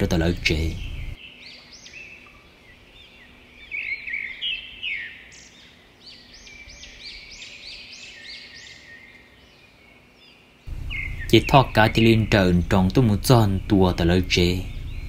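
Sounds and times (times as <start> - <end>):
birds chirping and calling: 0.0 - 15.0.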